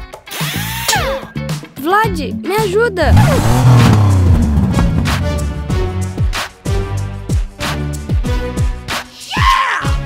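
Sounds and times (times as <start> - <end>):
background music: 0.0 - 10.0
car engine revving: 3.0 - 6.2.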